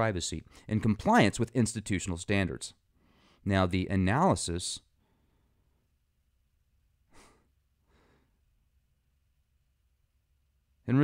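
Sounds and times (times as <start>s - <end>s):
breath close to microphone: 2.9s - 3.4s, 7.1s - 8.4s.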